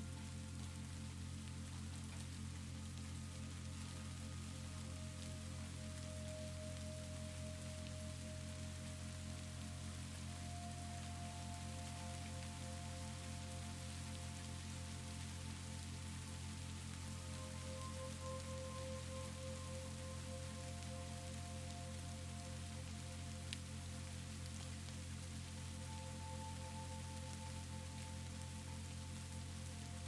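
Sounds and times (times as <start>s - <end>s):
soft ambient music: 0.0s - 30.0s
steady rain falling: 0.0s - 30.0s.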